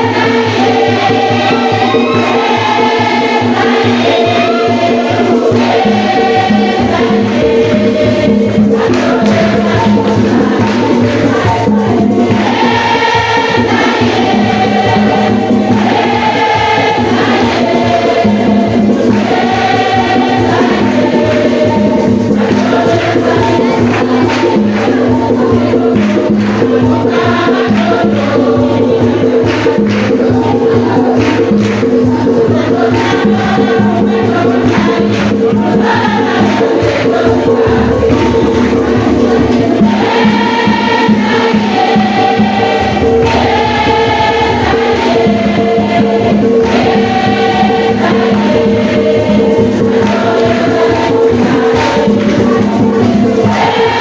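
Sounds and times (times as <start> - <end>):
church choir singing a hymn: 0.0 - 54.0
shaken percussion: 0.0 - 54.0.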